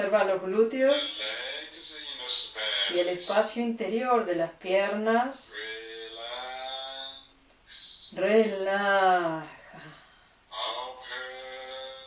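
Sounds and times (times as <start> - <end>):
person chanting a long word: 5.5 - 7.2, 10.5 - 12.0.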